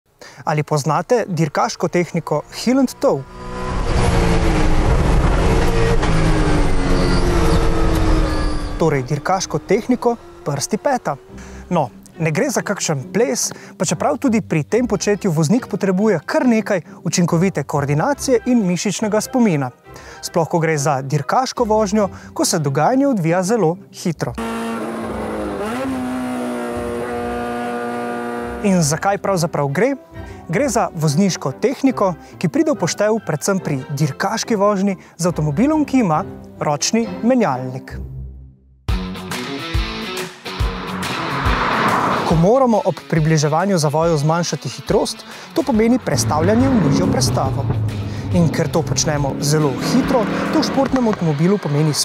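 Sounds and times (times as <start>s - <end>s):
race car engine running hard: 3.1s - 11.7s, 24.4s - 28.6s, 46.0s - 51.3s.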